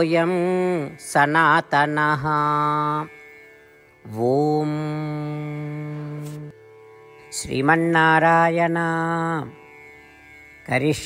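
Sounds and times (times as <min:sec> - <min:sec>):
person chanting: 0:00.0 - 0:03.4, 0:04.0 - 0:06.6, 0:07.2 - 0:09.8, 0:10.6 - 0:11.0.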